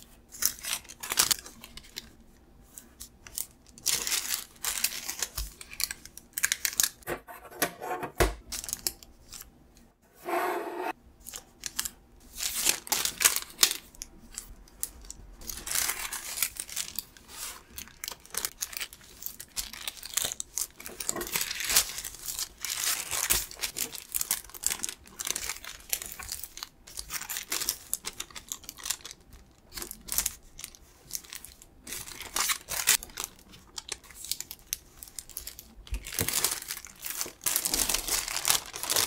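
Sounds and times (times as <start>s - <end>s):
paper crinkling and rustling: 0.0s - 7.0s, 11.3s - 39.0s.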